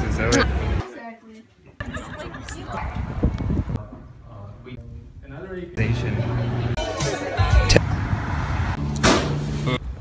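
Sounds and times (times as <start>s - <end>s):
street traffic noise: 1.8s - 4.2s, 5.8s - 10.0s
vehicle passing: 5.9s - 10.0s.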